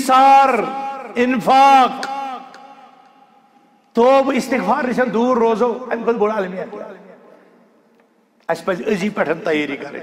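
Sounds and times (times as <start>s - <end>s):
man preaching: 0.0s - 7.4s, 8.4s - 10.0s.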